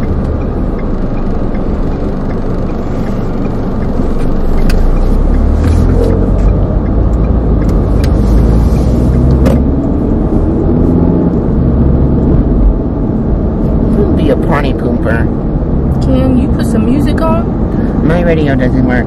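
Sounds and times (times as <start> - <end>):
car engine and road rumble: 0.0 - 19.0.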